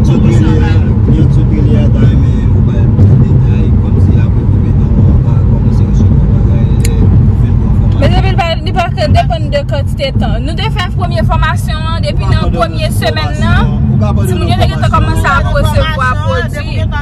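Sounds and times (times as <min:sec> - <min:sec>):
road and wind noise in car: 0:00.0 - 0:17.0
person speaking: 0:12.1 - 0:17.0.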